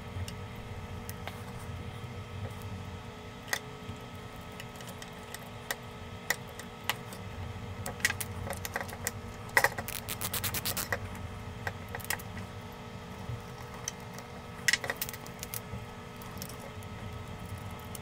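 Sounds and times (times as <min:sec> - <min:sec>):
small metal parts clicking: 0:08.0 - 0:11.0
screwdriver on small screws: 0:09.9 - 0:10.9.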